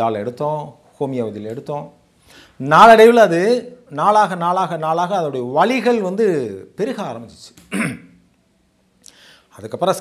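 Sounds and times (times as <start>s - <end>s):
man speaking: 2.6s - 8.0s
man clearing throat: 7.7s - 8.2s.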